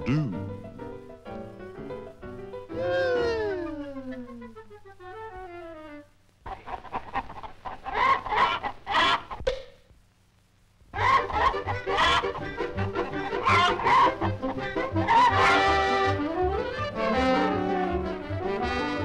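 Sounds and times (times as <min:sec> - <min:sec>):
cartoon hens clucking: 0:02.7 - 0:05.2, 0:06.5 - 0:09.4, 0:11.0 - 0:16.7
musical score: 0:11.0 - 0:19.0.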